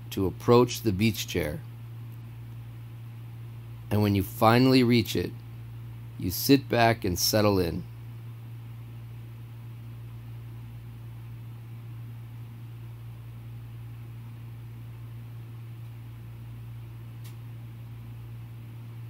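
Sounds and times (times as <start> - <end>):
low hum with faint hiss: 0.0 - 19.0.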